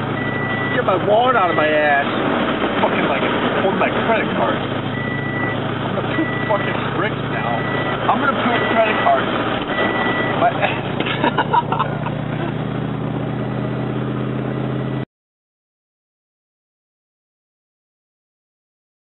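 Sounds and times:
car engine idling: 0:00.0 - 0:15.0
car electronic chime beeping: 0:00.2 - 0:02.0, 0:04.9 - 0:10.8.

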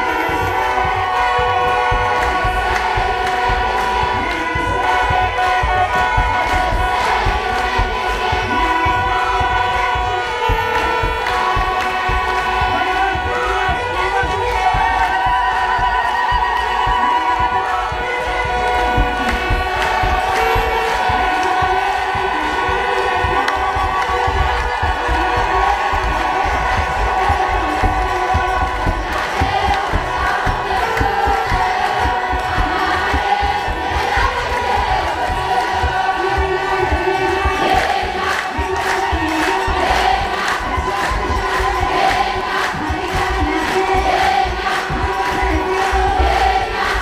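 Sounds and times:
crowd singing a hymn: 0:00.0 - 0:47.0
drum beating: 0:00.0 - 0:47.0.

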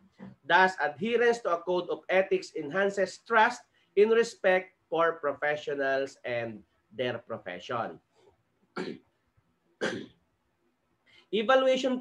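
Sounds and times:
man coughing: 0:08.8 - 0:09.1, 0:09.8 - 0:10.2.

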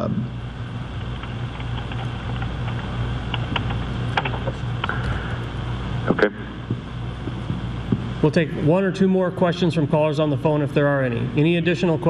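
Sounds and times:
low room hum: 0:00.0 - 0:12.0
faint clicks and taps: 0:01.0 - 0:05.1.

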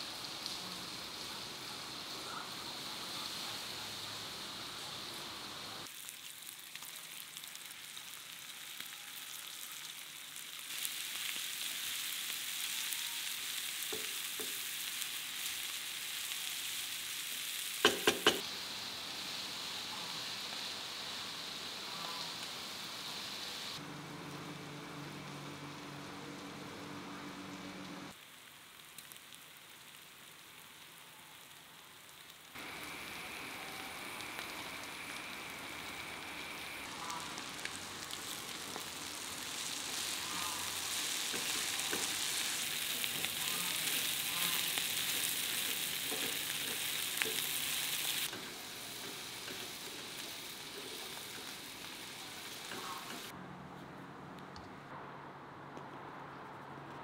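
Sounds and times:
food sizzling in a pan: 0:00.0 - 0:53.3.

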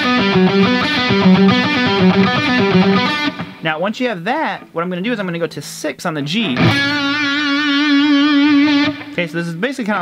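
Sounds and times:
electric guitar sustained note: 0:00.0 - 0:03.6.

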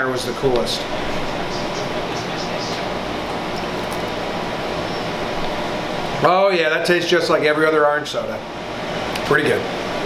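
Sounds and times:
air conditioner running: 0:00.0 - 0:10.0.

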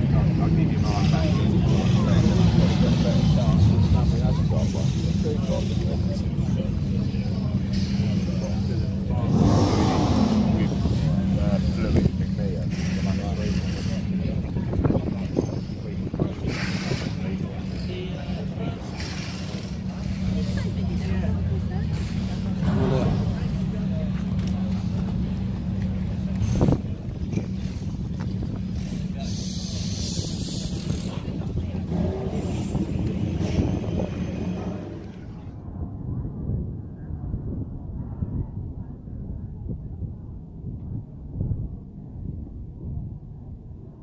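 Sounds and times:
indistinct voices: 0:00.0 - 0:35.8.

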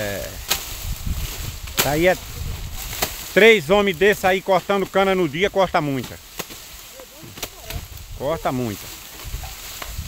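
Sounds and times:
machete chopping sugarcane: 0:00.4 - 0:00.8, 0:01.6 - 0:02.2, 0:02.8 - 0:03.4, 0:05.9 - 0:08.0
faint voices: 0:01.2 - 0:10.0.

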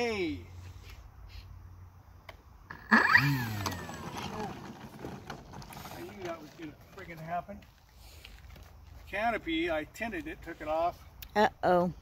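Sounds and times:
model plane propeller whine: 0:03.0 - 0:06.2.

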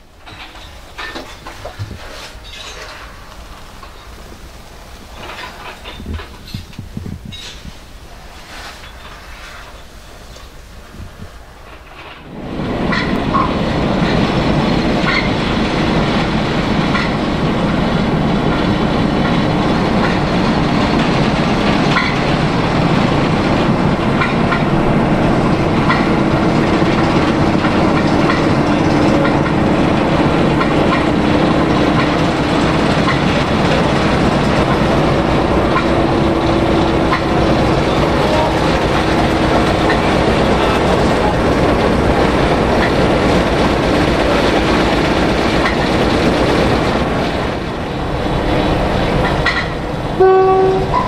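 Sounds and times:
diesel locomotive engine running: 0:00.0 - 0:51.0
wheel clicks over rail joints: 0:00.2 - 0:04.2, 0:05.1 - 0:07.7, 0:16.8 - 0:17.2, 0:18.5 - 0:23.2, 0:25.8 - 0:47.5, 0:49.2 - 0:49.8.

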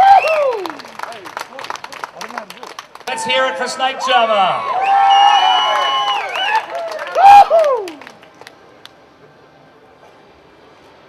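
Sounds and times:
voices whooping and cheering: 0:00.0 - 0:00.9, 0:03.1 - 0:08.1.

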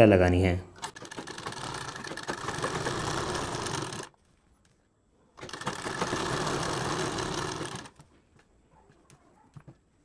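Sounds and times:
sewing machine stitching: 0:00.8 - 0:04.1, 0:05.4 - 0:08.0.

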